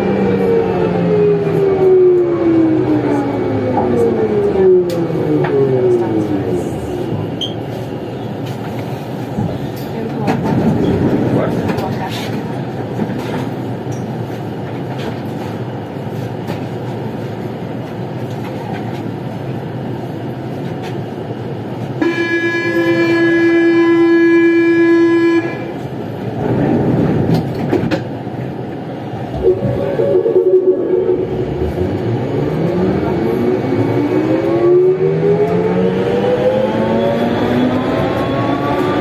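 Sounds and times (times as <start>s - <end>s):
metro train equipment running noise: 0.0s - 39.0s.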